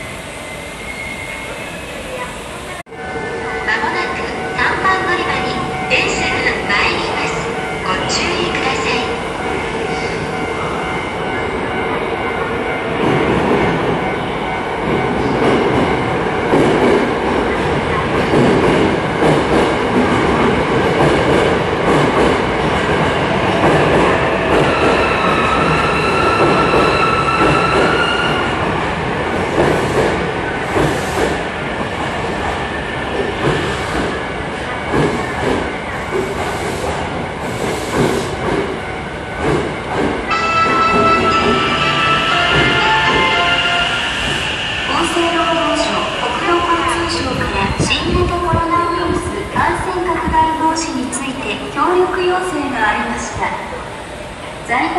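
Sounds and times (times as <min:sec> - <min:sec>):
high squeal of train brakes: 0:00.4 - 0:01.8
train rumble: 0:01.6 - 0:54.9.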